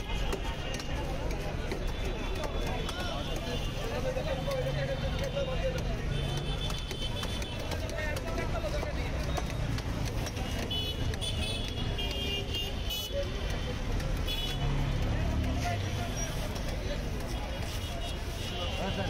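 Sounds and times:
traffic rumble: 0.0 - 19.0
vehicle horns: 10.5 - 15.0.

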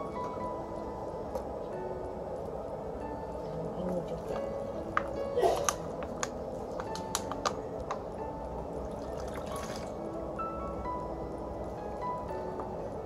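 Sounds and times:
soft instrumental music: 0.0 - 13.0
liquid pouring through a funnel: 8.9 - 10.0.

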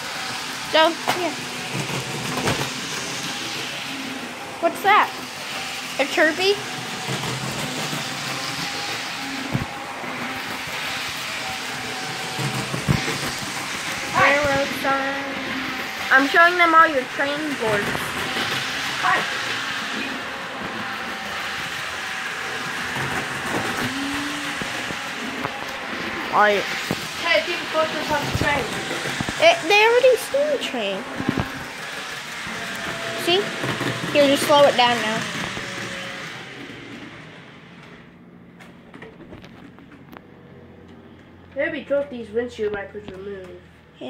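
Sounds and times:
model train running on track: 0.0 - 37.9.

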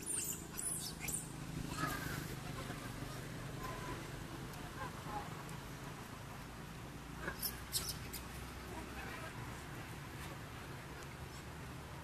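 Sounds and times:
monkey chirp: 0.0 - 2.2, 7.2 - 8.4
young monkeys squeaking: 0.0 - 2.3, 7.2 - 8.4.

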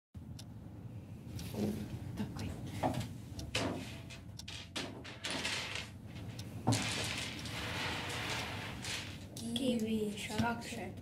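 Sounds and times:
hard sweets sliding across table: 6.7 - 9.2.

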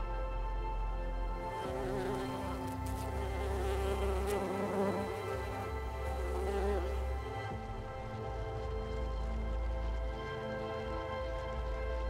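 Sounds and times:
soft background music: 0.0 - 12.0
flying insect buzzing: 1.6 - 7.4.

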